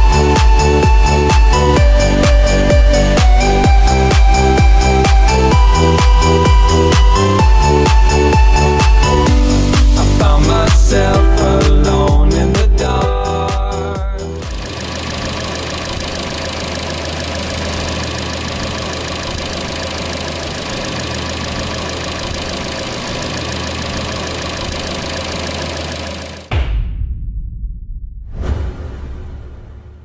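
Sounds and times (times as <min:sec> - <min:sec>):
music: 0:00.0 - 0:19.8
car engine idling: 0:00.0 - 0:26.5.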